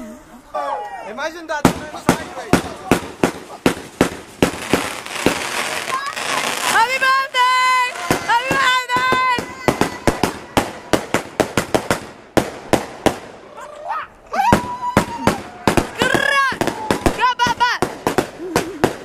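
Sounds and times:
fireworks bangs and crackles: 1.6s - 13.5s, 14.5s - 19.0s
people whooping and shouting: 5.9s - 11.0s, 13.4s - 17.6s.

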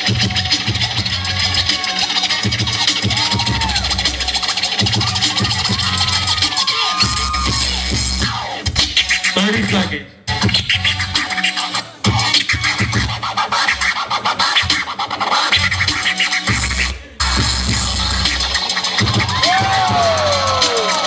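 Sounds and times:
loud beat over speakers: 0.0s - 21.0s.

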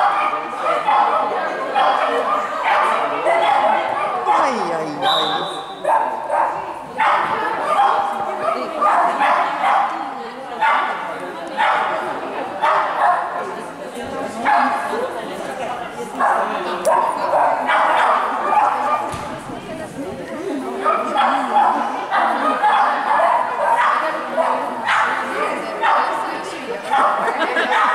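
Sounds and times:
dog barking: 0.0s - 4.6s, 5.8s - 11.0s, 11.6s - 13.4s, 14.4s - 14.9s, 16.2s - 19.1s, 20.8s - 26.2s, 26.9s - 27.9s.

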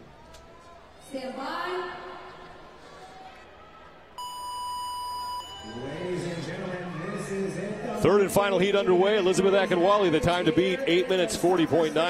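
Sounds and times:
electronic start beep: 4.2s - 6.0s.

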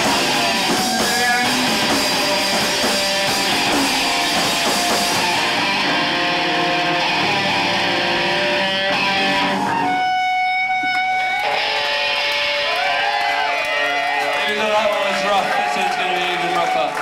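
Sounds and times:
guitar feedback tone: 0.0s - 12.9s
distorted electric guitar: 0.0s - 14.2s
live rock band: 0.0s - 14.5s.

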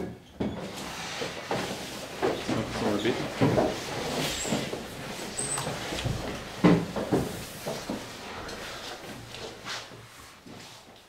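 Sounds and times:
objects knocking and bumping: 0.0s - 9.6s.

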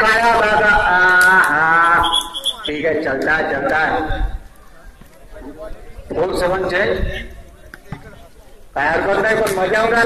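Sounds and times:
brief high trilling tone: 1.8s - 2.7s.

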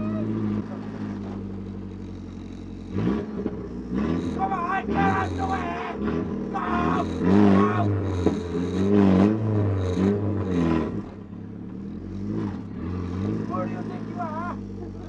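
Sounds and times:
car engine revving: 0.0s - 15.0s.

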